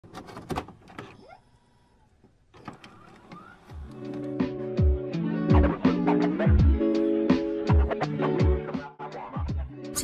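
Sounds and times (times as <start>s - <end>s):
music: 3.4s - 10.0s.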